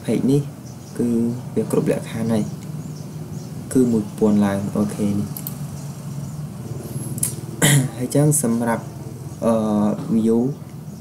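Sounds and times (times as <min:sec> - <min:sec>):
person talking: 0:00.0 - 0:02.6, 0:03.7 - 0:05.4.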